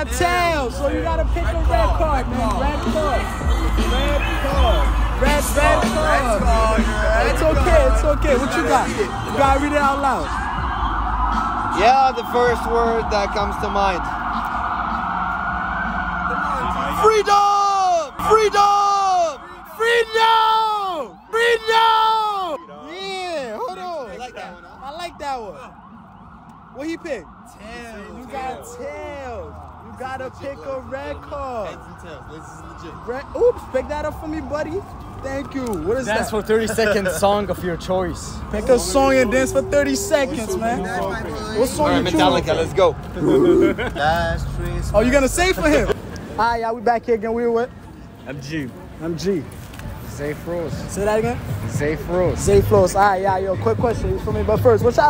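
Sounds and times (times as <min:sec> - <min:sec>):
men making vocal sounds: 0:00.0 - 0:10.4, 0:38.7 - 0:46.0
city street noise: 0:00.0 - 0:55.0
emergency vehicle siren wailing: 0:00.0 - 0:55.0
men laughing: 0:03.2 - 0:10.4, 0:23.6 - 0:24.8, 0:36.1 - 0:37.6, 0:39.5 - 0:46.4.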